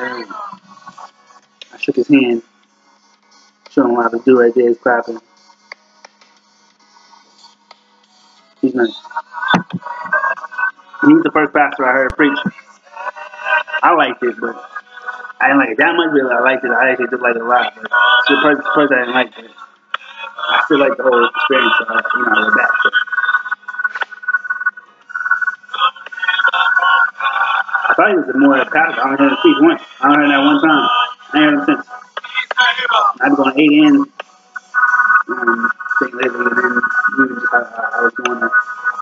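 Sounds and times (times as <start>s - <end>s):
music through small phone speaker: 0.0s - 39.0s
steady low hum: 8.6s - 32.2s
man's low tinny voice: 20.6s - 22.8s.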